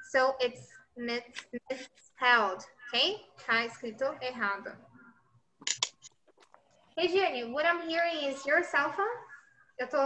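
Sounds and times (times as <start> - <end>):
sharp clicks: 5.6 - 6.7.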